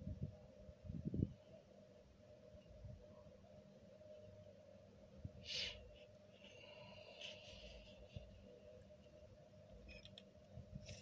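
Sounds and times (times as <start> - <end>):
faint steady hum: 0.0 - 11.0.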